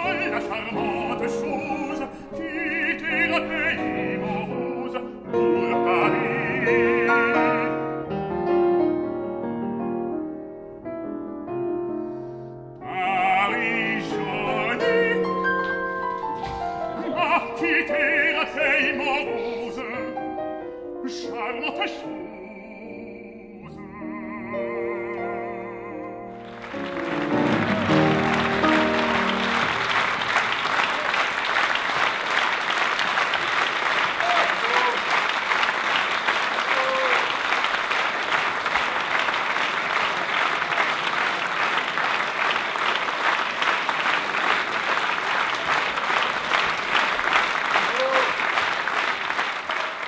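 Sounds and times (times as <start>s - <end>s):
audience applauding: 0.0s - 5.1s, 13.4s - 19.3s, 26.3s - 50.0s
audience calls: 26.3s - 50.0s.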